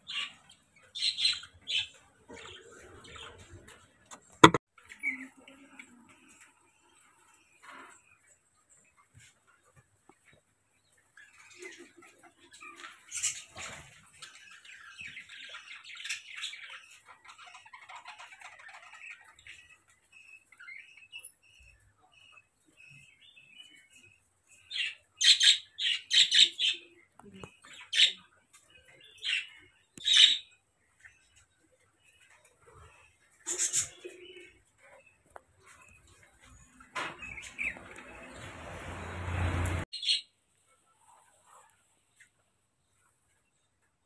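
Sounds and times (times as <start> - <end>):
bird chirping: 0.0 - 3.8.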